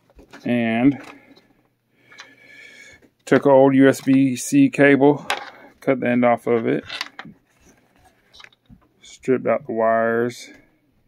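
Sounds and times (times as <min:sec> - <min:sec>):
cable clicks and rustles: 0:00.0 - 0:02.4, 0:06.5 - 0:08.9.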